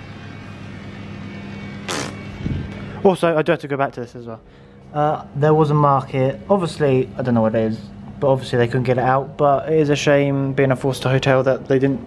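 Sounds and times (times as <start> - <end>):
low hum with hiss: 0.0 - 12.0
burst of noise: 1.8 - 2.6.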